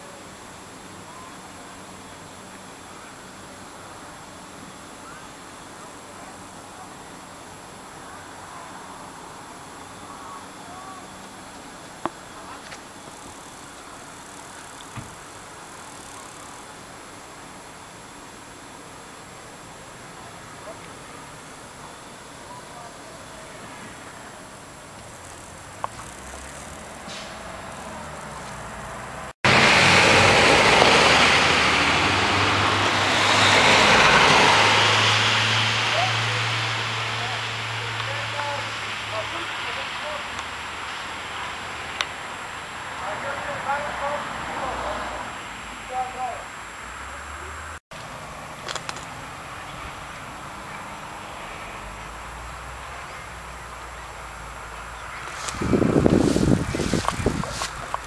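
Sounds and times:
fire engine rushing by: 19.6 - 58.0.

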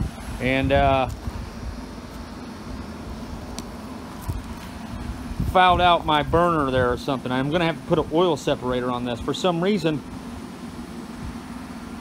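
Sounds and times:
burner roaring with low hum: 0.0 - 12.0.

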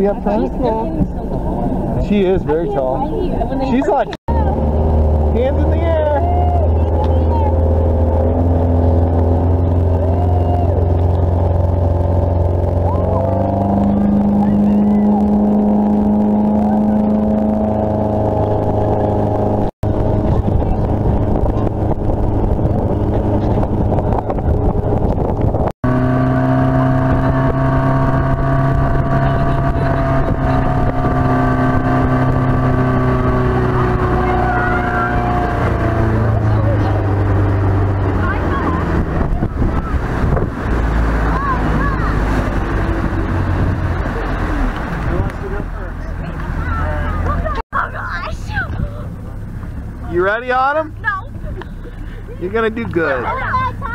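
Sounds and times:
motorboat engine drone: 0.0 - 53.9
water rushing: 0.0 - 53.9
wind: 0.0 - 53.9.

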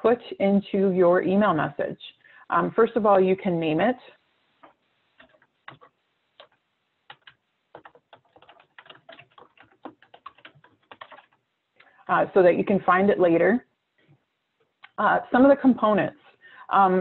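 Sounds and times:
computer keyboard typing: 4.6 - 11.4.

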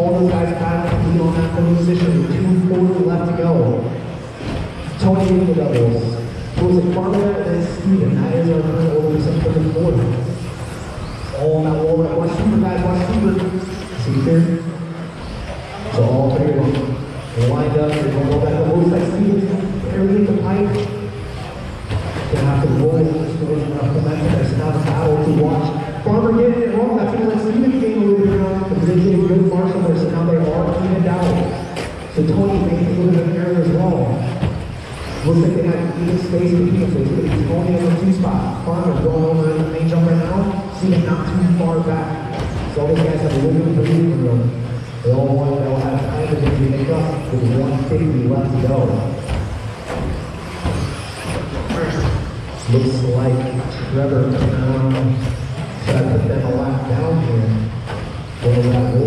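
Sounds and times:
tyre and chassis noise: 0.0 - 59.0
electric rc trucks running: 10.4 - 11.3, 34.7 - 38.7, 48.5 - 54.0
electric motors whining: 27.6 - 59.0.

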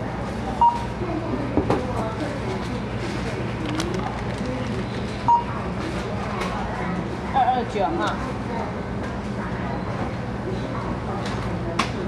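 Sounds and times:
distant voices murmuring: 0.0 - 12.0.

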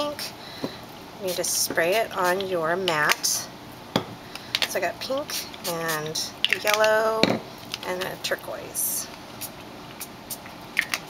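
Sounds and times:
pump spray bottle spritz: 1.3 - 2.5, 4.4 - 6.9
bottles clicking and tapping: 6.4 - 7.4.

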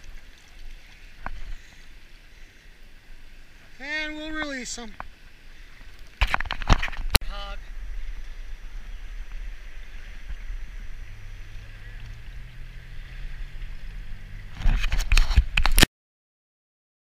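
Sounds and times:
shallow river water sloshing: 0.0 - 15.6.

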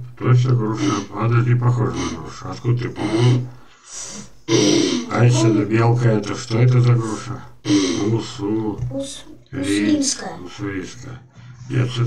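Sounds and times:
breathy hiss: 3.0 - 5.1
person voiced sound: 4.5 - 5.9, 8.9 - 10.3.

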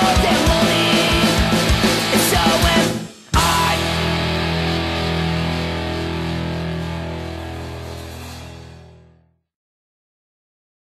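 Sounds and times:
punk rock band playing: 0.0 - 9.0
ringing guitar chord: 3.4 - 9.3.

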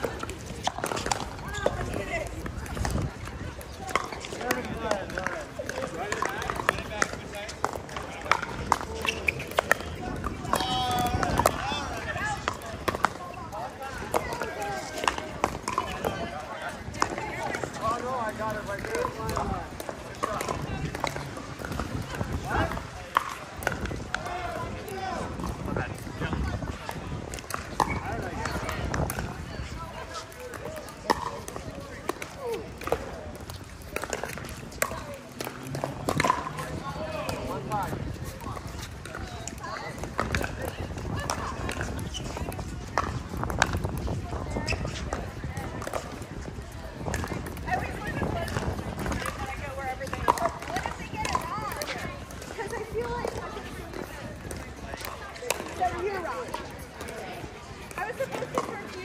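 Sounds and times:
paddles hitting plastic ball: 0.0 - 59.0
shoe scuffs on hard court: 44.5 - 45.3.

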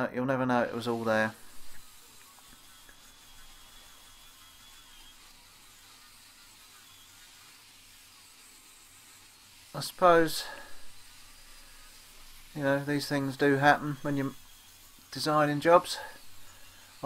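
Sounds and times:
faint steady hiss: 0.2 - 17.0
high thin whistle: 0.9 - 8.1.

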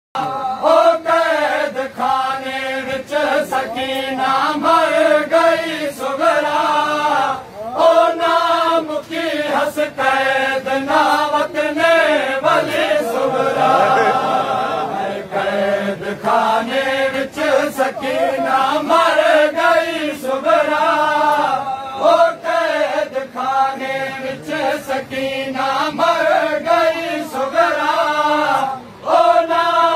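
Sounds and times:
men chanting in unison: 0.2 - 29.9.

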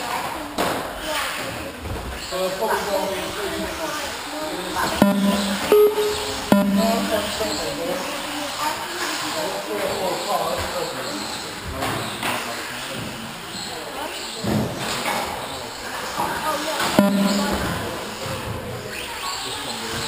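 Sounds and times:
voices echoing in a hall: 0.0 - 20.0.

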